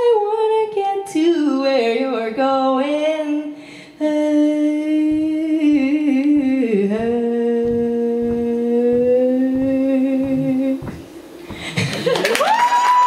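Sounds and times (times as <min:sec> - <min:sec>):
woman humming into a microphone: 0:04.0 - 0:11.6
audience stomping: 0:05.1 - 0:13.0.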